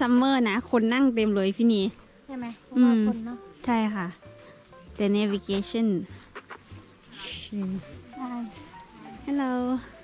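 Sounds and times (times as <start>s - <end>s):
background music slow melody: 0.0s - 10.0s.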